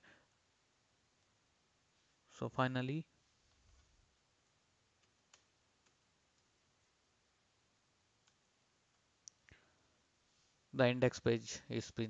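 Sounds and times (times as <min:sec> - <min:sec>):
faint sharp clicks: 0:05.0 - 0:06.5, 0:08.2 - 0:09.6.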